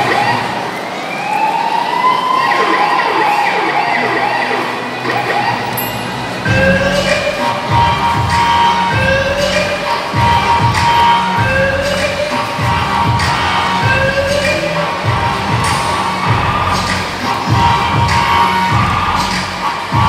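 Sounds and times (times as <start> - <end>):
children shouting: 0.0 - 20.0
backing music with steady beat: 2.6 - 20.0.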